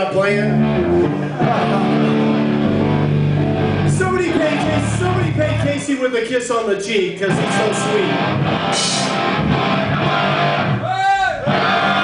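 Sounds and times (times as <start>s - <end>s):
electric guitar through amplifier: 0.0s - 5.7s, 7.3s - 12.0s.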